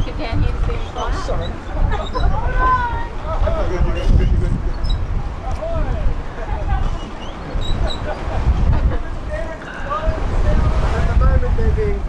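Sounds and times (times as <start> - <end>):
people conversing: 0.0 - 12.0
wind buffeting microphone: 0.0 - 12.0.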